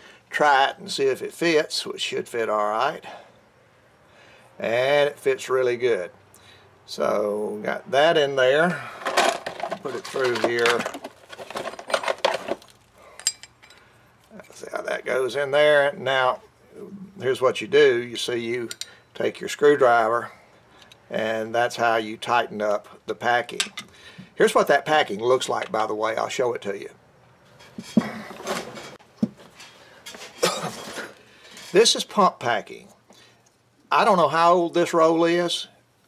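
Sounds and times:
handling rustle: 8.9s - 13.9s
sharp metal clicks: 18.7s - 19.0s.

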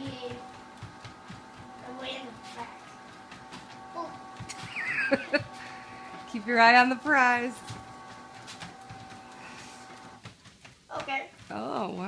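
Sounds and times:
footsteps on treadmill belt: 0.0s - 12.0s
treadmill motor whine: 0.0s - 12.0s.

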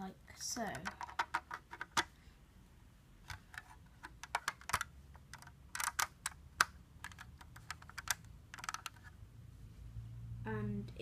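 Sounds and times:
plastic bricks clicking: 0.8s - 2.1s, 3.3s - 9.1s.

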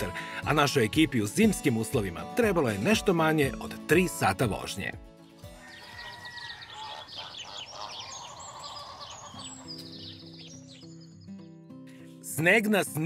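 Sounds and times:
bird chirps: 5.2s - 11.6s.

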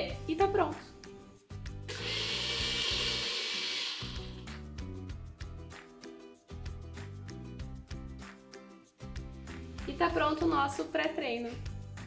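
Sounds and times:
blender motor whirring: 1.9s - 4.5s.

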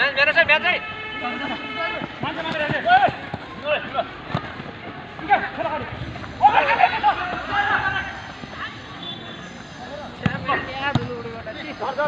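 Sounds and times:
players shouting: 0.2s - 11.0s.

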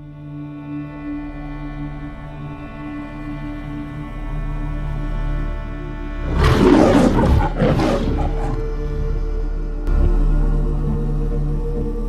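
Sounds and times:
sustained background music: 0.0s - 12.0s
lion roaring: 6.2s - 9.2s.

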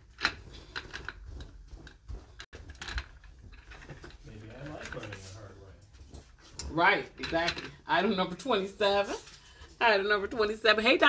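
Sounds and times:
garments rustling and clicking: 0.0s - 11.0s.

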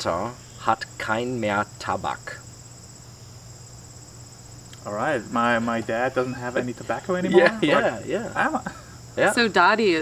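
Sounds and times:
high-pitched insect chorus: 0.0s - 10.0s
low steady hum: 0.0s - 10.0s.

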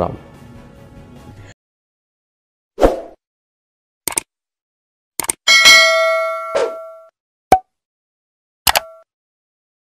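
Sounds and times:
mouse double clicks: 5.2s - 5.4s
bright bell-like ding: 5.5s - 7.1s.

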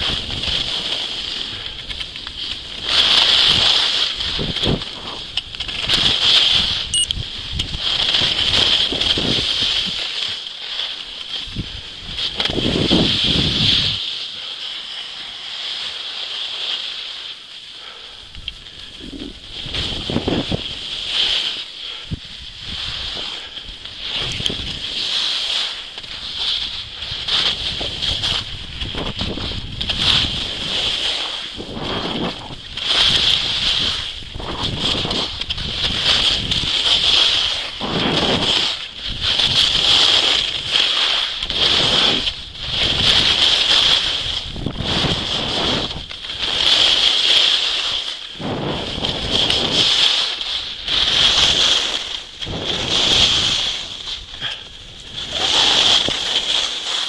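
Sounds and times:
skis hissing on snow: 0.0s - 57.0s
wind on microphone: 3.4s - 10.0s, 11.4s - 14.0s, 18.4s - 21.0s, 22.0s - 24.9s, 26.7s - 40.8s, 41.4s - 46.6s, 48.3s - 56.8s.

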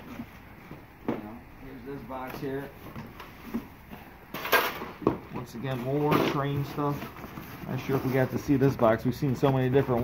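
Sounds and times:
cardboard scraping rustle: 2.1s - 10.0s.

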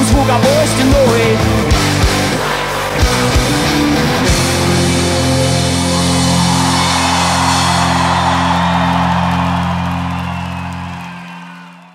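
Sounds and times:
rock band final chord ringing: 0.0s - 10.8s
crowd noise: 0.0s - 11.9s.

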